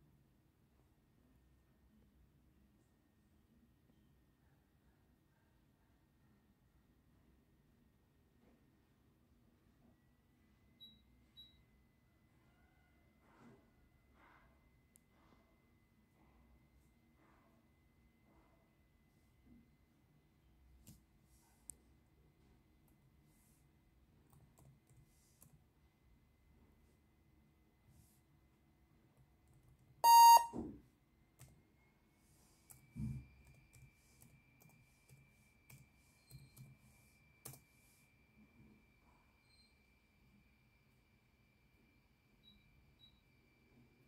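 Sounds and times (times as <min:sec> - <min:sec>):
short high-pitched electronic beeps: 0:30.0 - 0:30.5.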